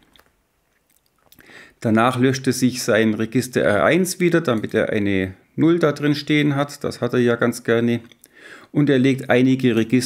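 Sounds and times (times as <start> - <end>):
short breath: 1.4 - 1.8, 8.3 - 8.8
man speaking: 1.8 - 8.1, 8.7 - 10.0.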